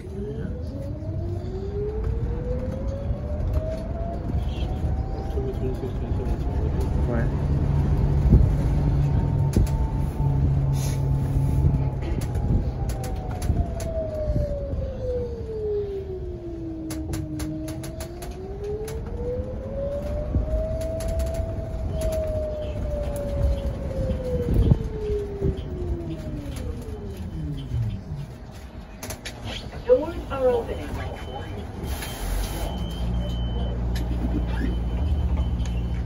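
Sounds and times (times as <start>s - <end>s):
bus ride noise: 0.0s - 36.0s
rattles and clicks: 16.8s - 29.9s.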